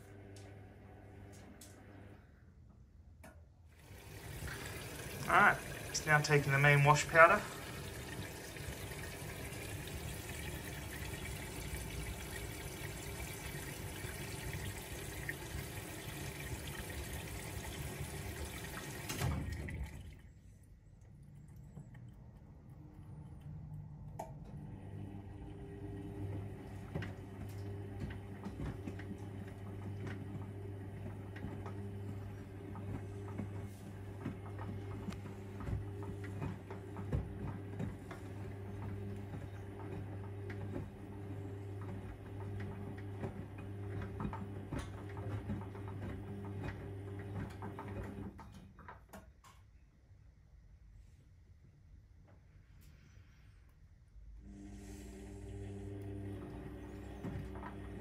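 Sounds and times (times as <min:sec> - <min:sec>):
water rushing into washing machine: 0:03.7 - 0:23.3, 0:23.9 - 0:49.2, 0:54.4 - 0:58.0
washing machine drum motor hum: 0:03.8 - 0:20.4, 0:21.0 - 0:49.2, 0:54.4 - 0:58.0.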